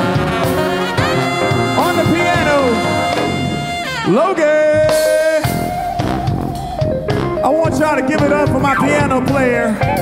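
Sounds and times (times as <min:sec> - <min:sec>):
bass: 0:00.0 - 0:10.0
drum kit: 0:00.0 - 0:10.0
organ keyboard solo: 0:00.0 - 0:10.0.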